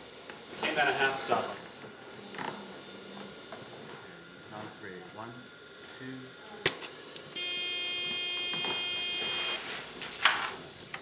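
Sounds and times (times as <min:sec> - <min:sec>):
steady electronic tone: 0:07.3 - 0:09.9.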